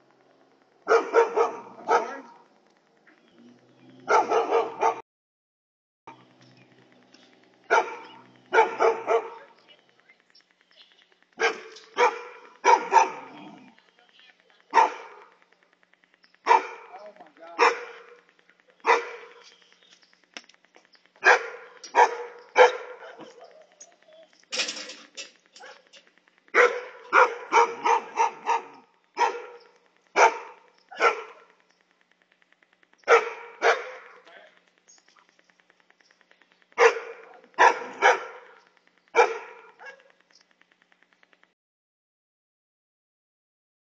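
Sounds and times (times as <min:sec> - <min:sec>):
dog barking: 0:00.8 - 0:02.4, 0:04.0 - 0:05.0, 0:07.7 - 0:09.5, 0:11.4 - 0:13.6, 0:14.7 - 0:15.3, 0:16.4 - 0:16.9, 0:17.6 - 0:18.2, 0:18.8 - 0:19.4, 0:21.2 - 0:23.6, 0:25.6 - 0:25.9, 0:26.5 - 0:31.6, 0:33.0 - 0:34.3, 0:36.8 - 0:38.6, 0:39.2 - 0:40.1.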